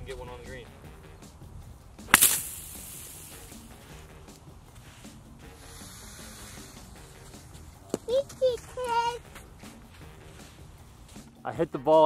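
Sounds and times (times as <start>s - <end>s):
golf club striking ball: 2.0s - 3.8s
hiss of sprayed sand: 2.1s - 3.6s, 4.9s - 7.2s.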